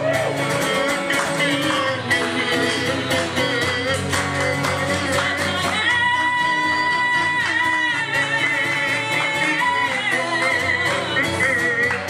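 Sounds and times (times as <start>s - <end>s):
acoustic guitar: 0.0s - 12.0s
woman singing: 0.2s - 12.0s.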